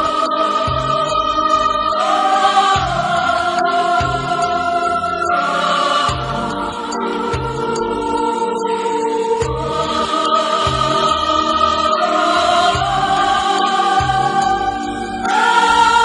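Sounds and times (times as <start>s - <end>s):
choir singing a hymn: 0.0s - 16.0s
soft instrumental accompaniment: 0.0s - 16.0s.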